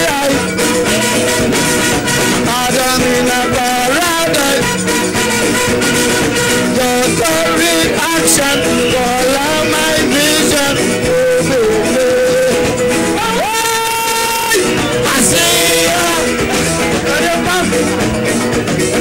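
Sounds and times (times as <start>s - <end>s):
band playing: 0.0s - 19.0s
man singing calypso song: 0.0s - 19.0s.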